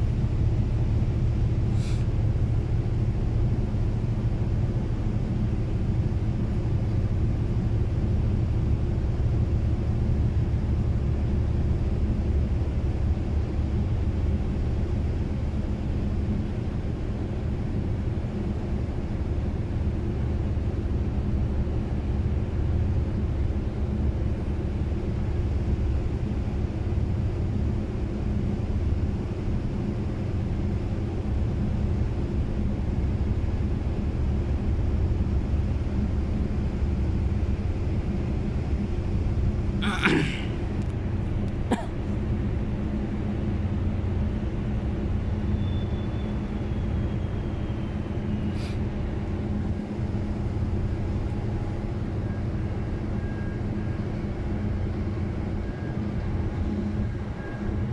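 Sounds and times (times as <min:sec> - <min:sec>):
ship diesel engines rumbling: 0:00.0 - 0:57.9.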